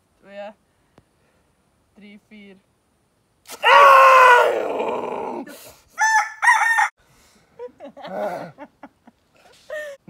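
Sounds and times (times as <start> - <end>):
person yelling in pain: 3.6 - 5.5.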